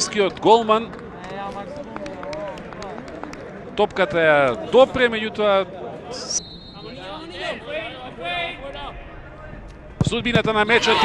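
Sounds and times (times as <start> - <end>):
broadcast background noise: 0.0 - 11.0.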